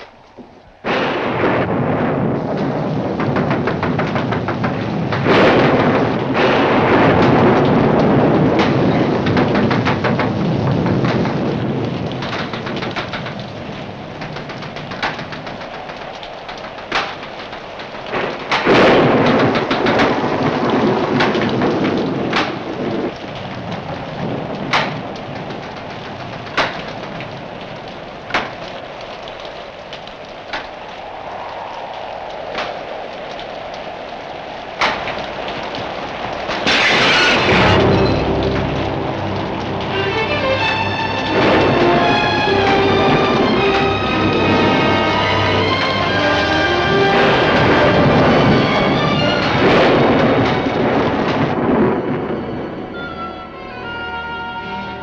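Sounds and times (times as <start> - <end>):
sharp cracks: 0.0 - 52.5
thunder rolling: 0.0 - 53.7
steady rain: 0.0 - 55.0.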